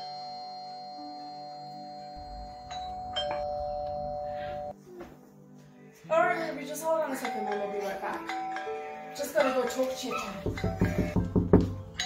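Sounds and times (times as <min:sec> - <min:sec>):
two-tone doorbell chime: 0:00.0 - 0:04.7.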